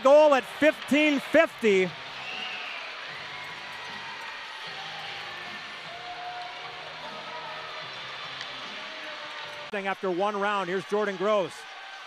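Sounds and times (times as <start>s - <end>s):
arena crowd hubbub: 0.0s - 12.0s
music: 0.0s - 12.0s.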